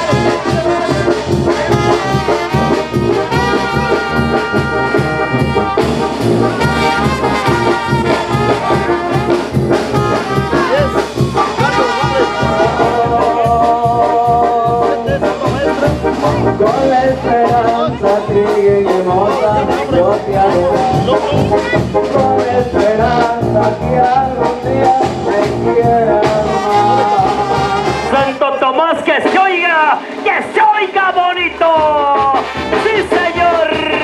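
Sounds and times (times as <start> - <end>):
brass band music: 0.0 - 34.0.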